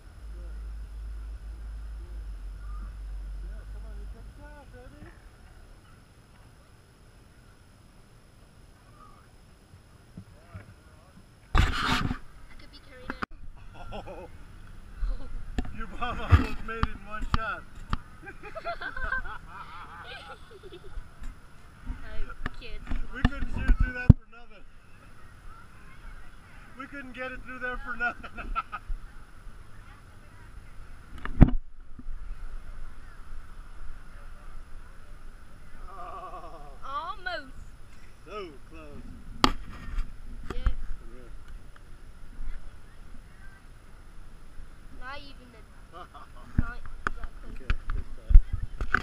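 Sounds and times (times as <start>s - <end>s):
children calling and chattering: 17.6s - 27.0s, 27.8s - 31.4s, 32.0s - 38.2s.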